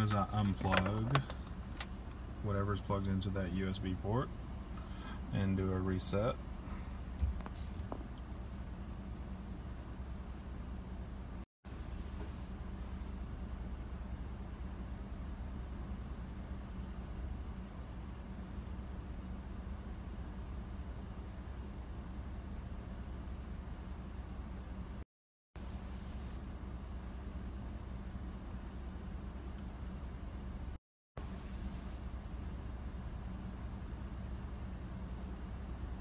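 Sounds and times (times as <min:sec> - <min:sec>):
low hum inside car cabin: 0:00.0 - 0:25.0, 0:25.6 - 0:36.0.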